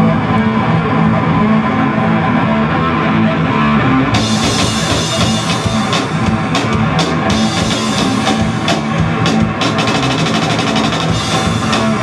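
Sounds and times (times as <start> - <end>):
heavy metal band playing: 0.0 - 12.0
rapid drum strokes: 4.2 - 12.0.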